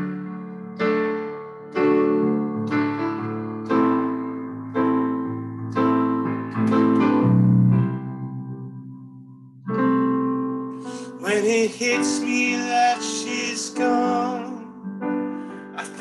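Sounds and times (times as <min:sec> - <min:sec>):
piano chords: 0:00.0 - 0:16.0
person singing: 0:11.0 - 0:14.9, 0:15.8 - 0:16.0.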